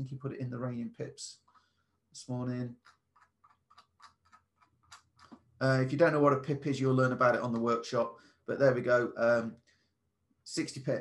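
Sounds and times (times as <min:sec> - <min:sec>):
mouse scroll wheel clicking: 0:02.8 - 0:05.4.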